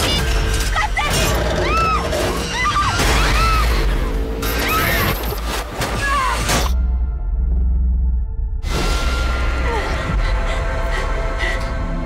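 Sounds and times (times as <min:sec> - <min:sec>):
low rumbling trailer score: 0:06.6 - 0:12.0.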